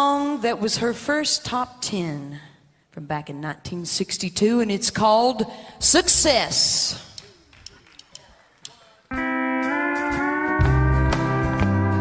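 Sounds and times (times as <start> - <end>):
country band playing: 9.1 - 12.0
steel guitar sliding chords: 9.1 - 12.0.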